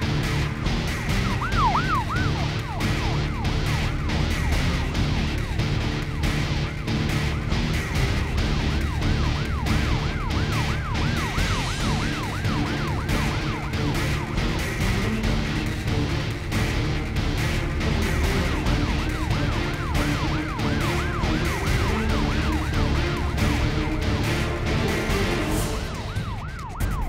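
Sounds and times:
siren yelping: 0.0s - 15.1s, 18.0s - 27.0s
background music: 0.0s - 27.0s.

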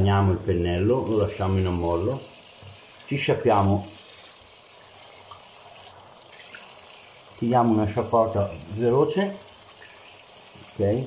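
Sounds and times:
tap water running into sink: 0.0s - 11.0s
face rinsed with wet hands: 1.0s - 11.0s.

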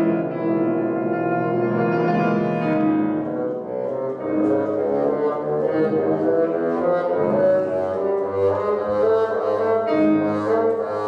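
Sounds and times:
bassoon holding long notes: 0.0s - 11.0s
grand piano: 0.0s - 11.0s.

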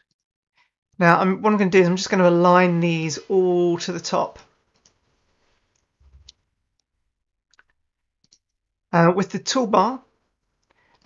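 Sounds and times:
computer mouse clicks: 7.5s - 8.6s.

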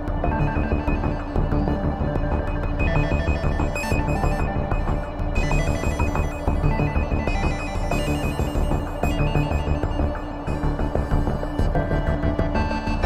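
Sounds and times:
pulsing low bass: 0.0s - 13.0s.

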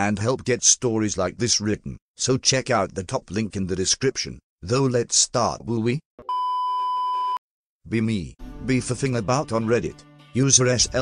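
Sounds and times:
high-pitched electronic beep: 6.2s - 7.4s.

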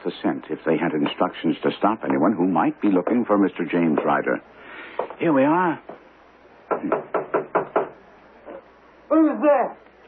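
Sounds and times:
knocking on door: 6.7s - 8.0s.

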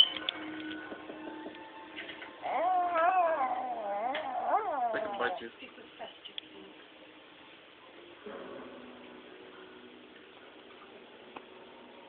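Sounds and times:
angry cat yowling: 2.4s - 5.4s.

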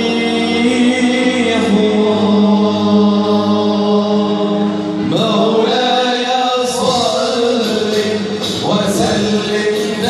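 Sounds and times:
men chanting in unison over loudspeakers: 0.0s - 10.0s.

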